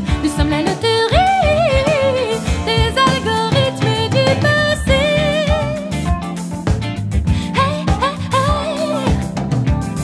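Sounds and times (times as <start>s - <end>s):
woman singing: 0.0s - 6.1s, 7.4s - 9.4s
orchestral pop backing with drums: 0.0s - 10.0s.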